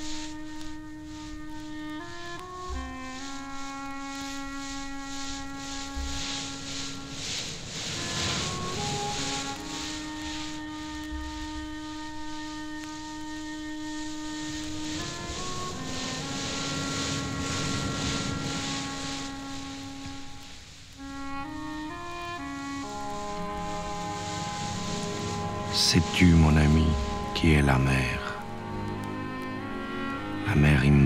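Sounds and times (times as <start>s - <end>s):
sea surf rushing: 0.0s - 31.0s
slow orchestral music: 0.0s - 31.0s.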